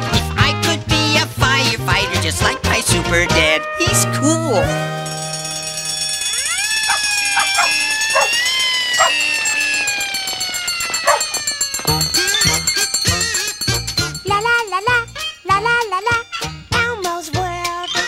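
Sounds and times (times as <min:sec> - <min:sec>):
cartoon dogs howling: 0:06.4 - 0:11.4
bright music: 0:11.0 - 0:17.8.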